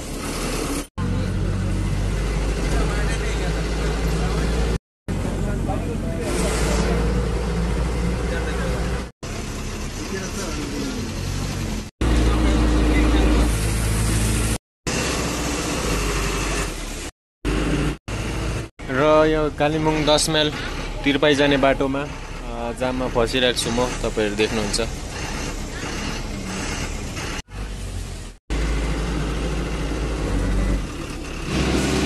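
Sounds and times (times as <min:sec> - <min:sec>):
bus engine droning: 0:00.0 - 0:32.0
road noise: 0:00.0 - 0:32.0.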